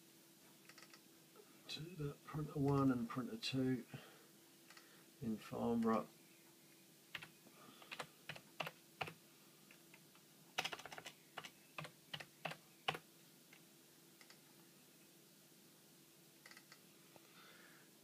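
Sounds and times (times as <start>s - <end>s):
typing on computer keyboard: 7.2s - 9.2s, 10.6s - 13.0s.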